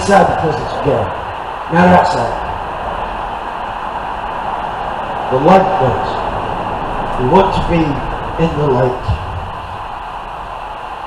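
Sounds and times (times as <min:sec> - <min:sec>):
low rumble: 0:00.0 - 0:11.0
steady hiss: 0:00.0 - 0:11.0.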